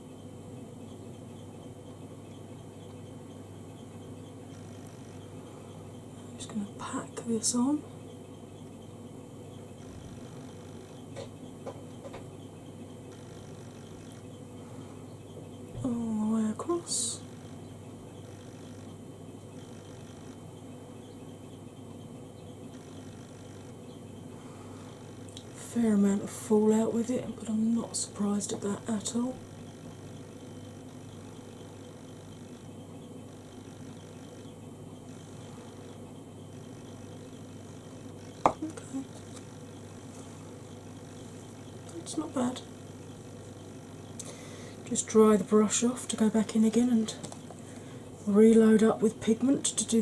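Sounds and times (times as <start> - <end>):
low hum: 0.0 - 50.0.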